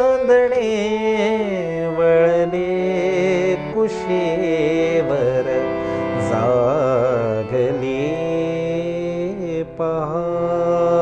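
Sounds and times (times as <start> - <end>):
harmonium: 0.0 - 11.0
man singing held notes: 0.0 - 11.0.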